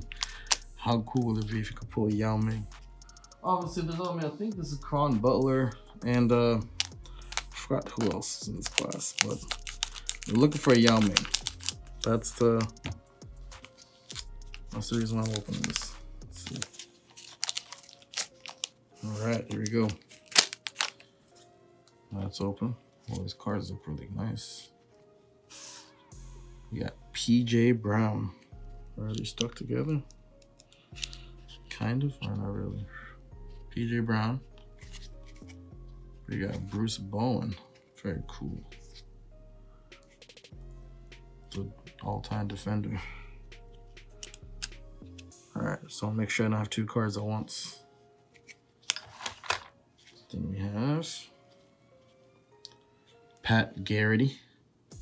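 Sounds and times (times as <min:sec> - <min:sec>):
rustling of cards: 0:06.1 - 0:21.5, 0:30.4 - 0:32.4, 0:34.7 - 0:35.6, 0:44.1 - 0:45.3, 0:48.3 - 0:50.4
foil wrapper crackling: 0:06.8 - 0:12.7, 0:13.6 - 0:14.2, 0:14.8 - 0:21.1.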